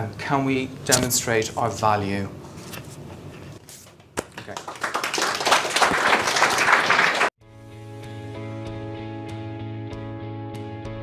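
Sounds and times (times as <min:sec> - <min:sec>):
audience applauding: 0:04.4 - 0:07.4.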